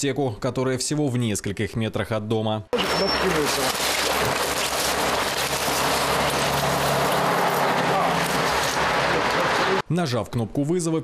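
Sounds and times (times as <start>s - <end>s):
street traffic: 2.8s - 9.8s.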